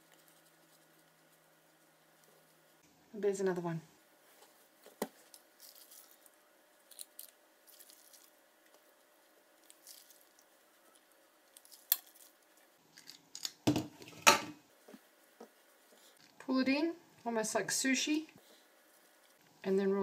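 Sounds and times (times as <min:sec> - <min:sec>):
hands rustling pastry wrappers: 0:04.4 - 0:13.4.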